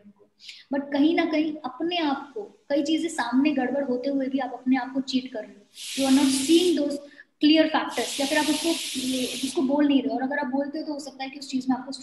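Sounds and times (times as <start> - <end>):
woman speaking: 0.0 - 12.0
loud hiss noise: 5.6 - 6.8, 7.9 - 9.8.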